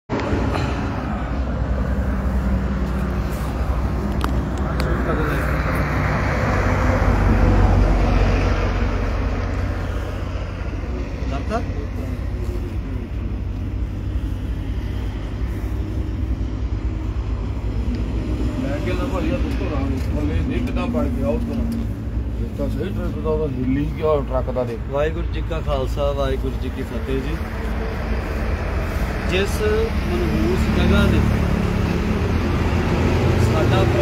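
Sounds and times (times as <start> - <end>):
highway traffic rumble: 0.1 - 34.0.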